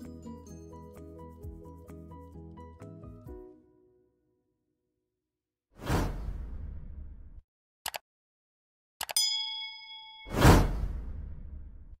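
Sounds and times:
bell ding: 9.2s - 10.7s.

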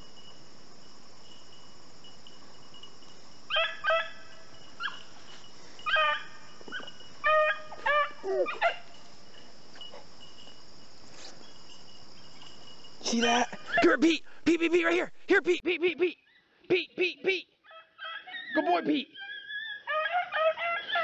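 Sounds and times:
insects chirping: 0.0s - 21.0s
dog barking in high yelps: 3.5s - 5.0s, 5.8s - 8.9s, 17.6s - 21.0s.

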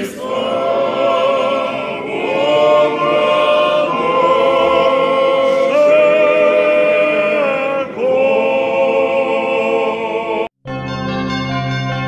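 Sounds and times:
choir singing slow chant: 0.0s - 10.5s.

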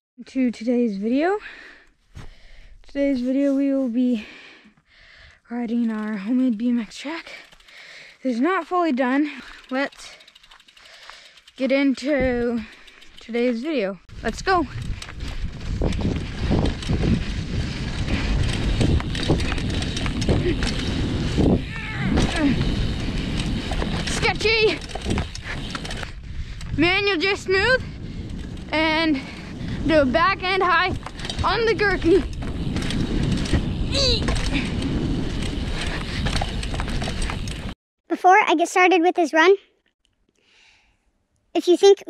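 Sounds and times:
bike clicks and knocks: 8.6s - 13.8s, 14.6s - 27.6s, 29.9s - 37.8s
wind on microphone: 14.1s - 37.7s
tyres rolling on dirt: 14.4s - 37.8s.

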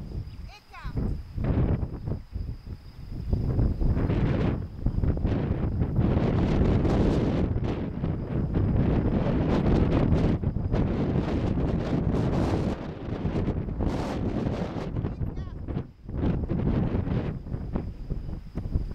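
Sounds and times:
wind buffeting microphone: 0.0s - 18.9s.

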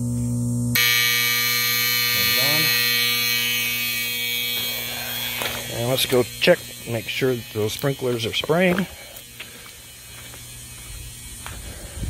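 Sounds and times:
low electrical hum: 0.0s - 12.0s
shrill alarm buzzer: 0.7s - 12.0s.

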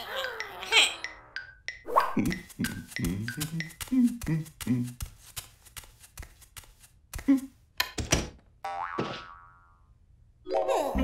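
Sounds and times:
cartoon character vocalisation: 0.0s - 1.4s, 10.5s - 11.0s
springy boing: 8.7s - 9.9s.

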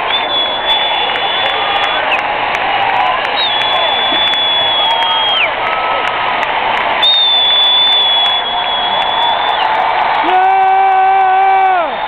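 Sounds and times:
crowd applauding and cheering: 0.0s - 12.0s
long shrill whistles: 0.1s - 2.2s, 3.4s - 5.5s, 7.0s - 9.8s
people shouting: 10.2s - 12.0s.

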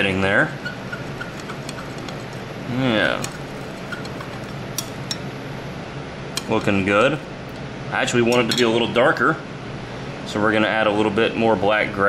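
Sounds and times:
low background hum: 0.0s - 12.0s
metal spatula clinking on glass: 3.1s - 5.2s.

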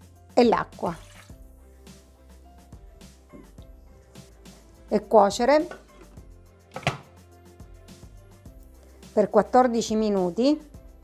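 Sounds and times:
quiet background music: 0.0s - 11.0s
water poured into steel bowl: 0.8s - 1.4s.

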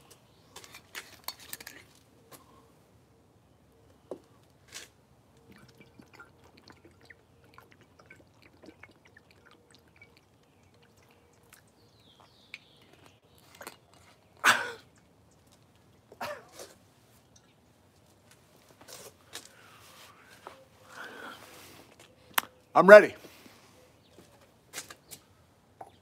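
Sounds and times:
swallowing and mouth clicks: 5.4s - 16.2s.

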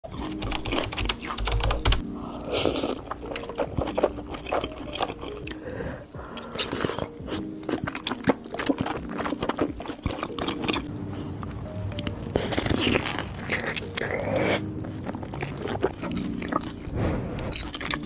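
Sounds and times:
chewing with wet clicks and smacks: 0.0s - 16.9s, 17.5s - 18.0s.

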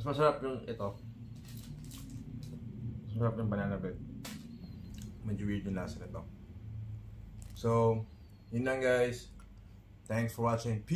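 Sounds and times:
low steady hum: 0.0s - 10.9s.

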